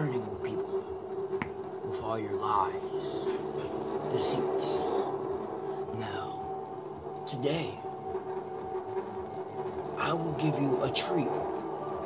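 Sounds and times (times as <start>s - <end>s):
indistinct speech: 0.0s - 0.8s, 1.8s - 3.4s, 4.1s - 5.1s, 5.9s - 6.4s, 7.3s - 7.8s, 10.0s - 11.4s
steady low hum: 0.0s - 12.0s.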